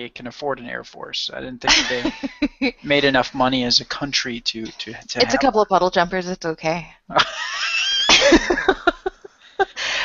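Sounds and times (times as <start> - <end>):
high squealing laugh: 7.1 - 9.8.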